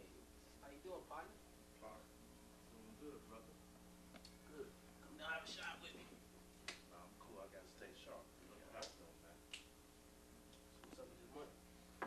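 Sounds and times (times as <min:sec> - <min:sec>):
steady low hum: 0:00.0 - 0:12.0
hand slaps on backs: 0:06.6 - 0:06.9.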